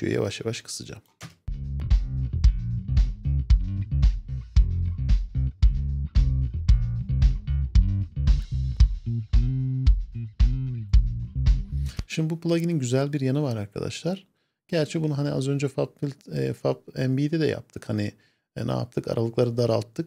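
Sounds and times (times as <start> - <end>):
bass guitar line: 1.5 - 12.0
kick drum hits: 1.9 - 11.7.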